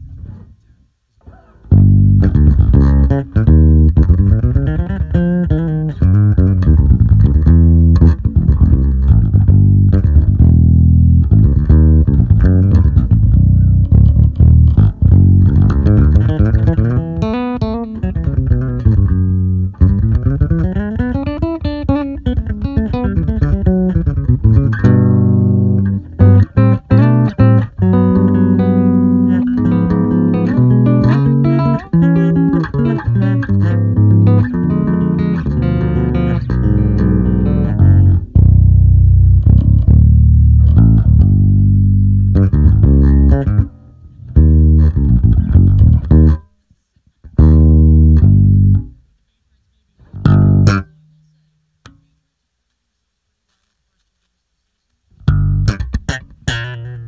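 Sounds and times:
electric bass line: 1.7s - 46.5s, 47.3s - 49.0s, 50.1s - 51.3s, 55.2s - 57.0s.

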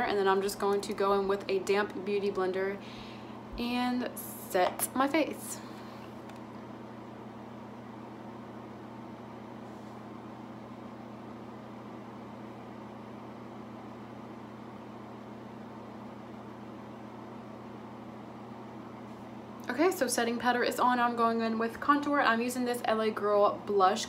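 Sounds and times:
appliance humming: 0.0s - 24.0s.

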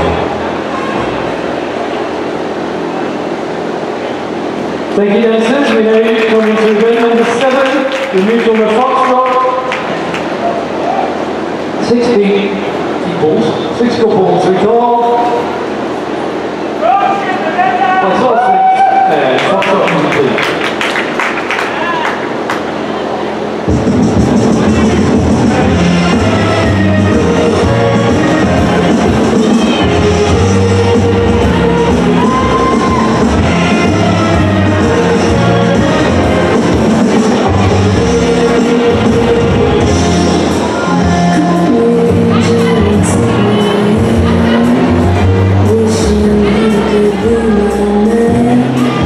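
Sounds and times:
crowd hubbub echoing: 0.0s - 11.8s, 19.7s - 49.0s
dance music over sound system: 23.8s - 49.0s.

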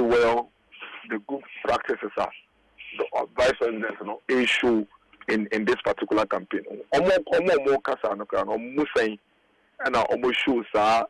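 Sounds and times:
man speaking over telephone: 0.0s - 9.2s, 9.8s - 11.0s.

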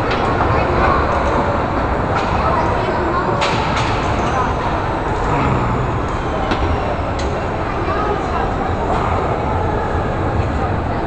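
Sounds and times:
carousel rumbling: 4.4s - 11.0s.

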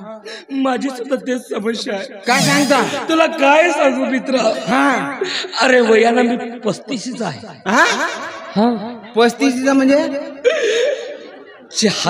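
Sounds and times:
man chuckling: 2.3s - 3.0s
man's drawn-out exclamation: 2.3s - 3.1s.

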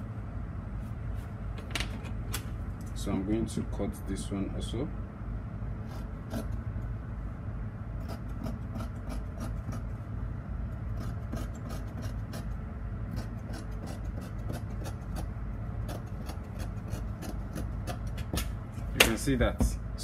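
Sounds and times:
steady low hum: 0.0s - 20.0s
scissors snipping fabric: 10.9s - 12.5s, 13.1s - 19.1s.

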